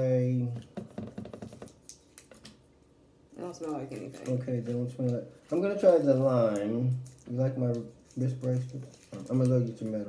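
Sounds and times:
candy wrapper crinkling: 1.5 - 2.7, 3.5 - 10.0.

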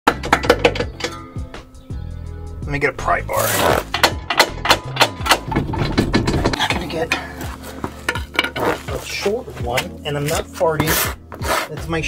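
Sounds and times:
music with low bass line: 0.1 - 12.0.

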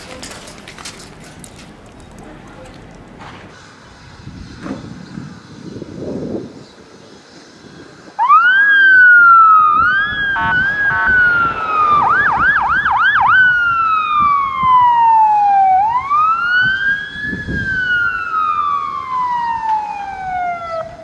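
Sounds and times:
police siren wailing and yelping: 8.2 - 21.0.

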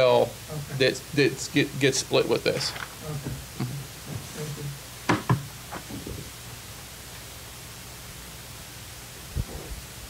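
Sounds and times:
sharp knocks: 5.1 - 6.2.

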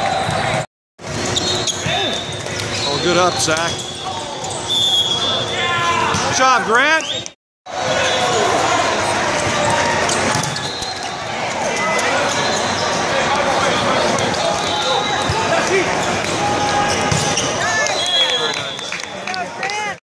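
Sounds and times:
shoe squeaks: 1.2 - 5.5, 10.1 - 13.1
hubbub of many voices: 1.8 - 20.0.

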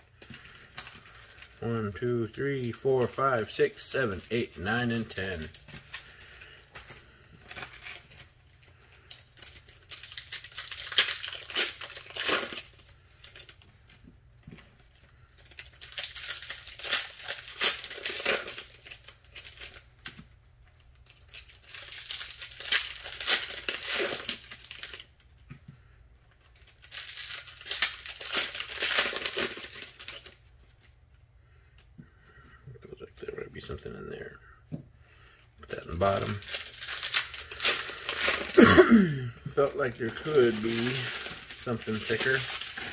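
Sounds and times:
card pack wrappers crinkling and tearing: 0.0 - 31.9, 35.2 - 42.9.

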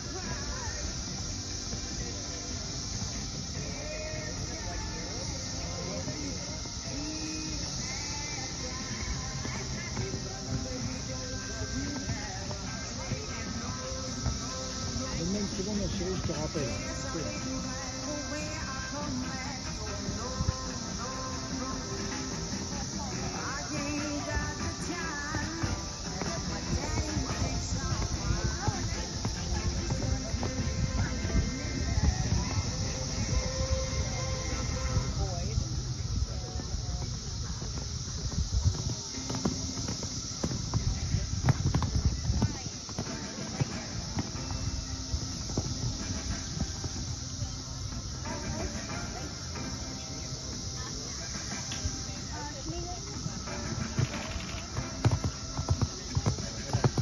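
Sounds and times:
horse hoofbeats on sand: 0.0 - 57.0
music: 0.0 - 57.0
people's voices: 0.0 - 57.0.

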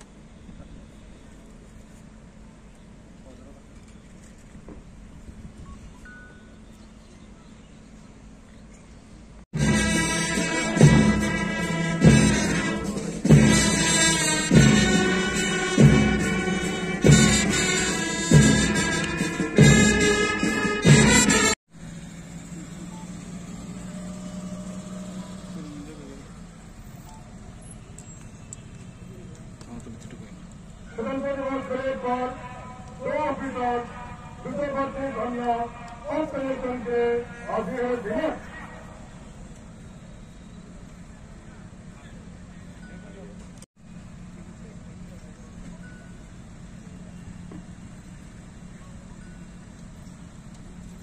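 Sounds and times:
jeep engine rumble: 21.0 - 31.6, 38.8 - 51.0
car engine idling: 21.7 - 31.6
faint clicks: 27.9 - 30.8.

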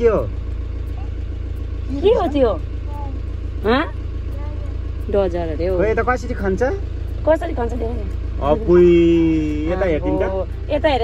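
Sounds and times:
car engine rumbling: 0.0 - 11.0.

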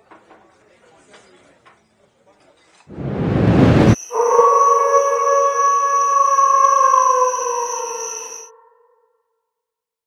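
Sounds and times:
rising whoosh: 2.9 - 6.2
wolves howling: 4.0 - 8.8.

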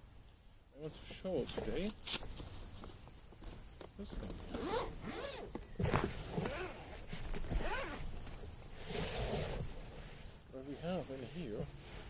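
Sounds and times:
zipper being pulled open: 4.4 - 9.9.

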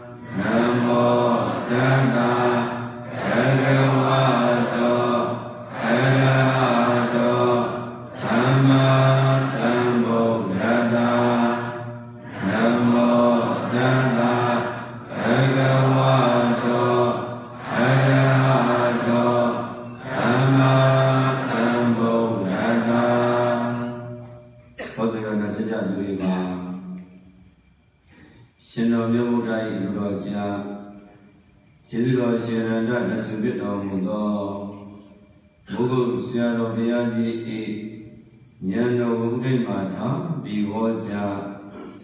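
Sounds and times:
monk chanting in long notes: 0.0 - 27.3, 28.6 - 42.0.

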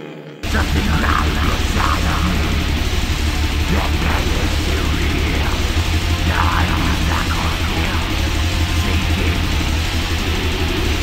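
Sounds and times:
bass and drums rumble: 0.4 - 11.0
heavily distorted guitars: 0.4 - 11.0.

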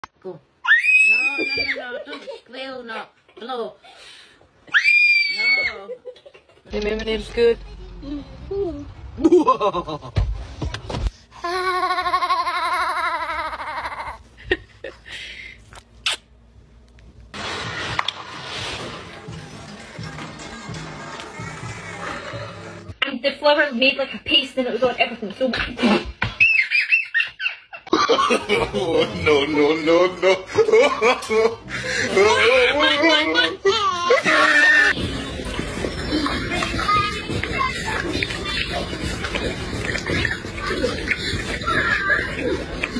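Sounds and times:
toddler squealing: 0.7 - 1.8.

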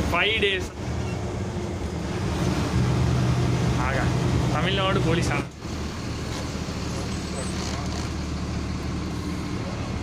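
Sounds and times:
bus engine drone: 0.0 - 10.0
road noise: 0.0 - 10.0.

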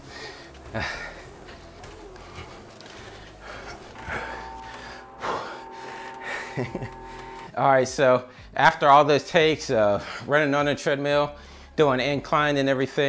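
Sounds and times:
faint steady tone: 2.2 - 7.5
man laughing: 5.2 - 7.4
man breathing hard and gasping: 11.4 - 11.8.

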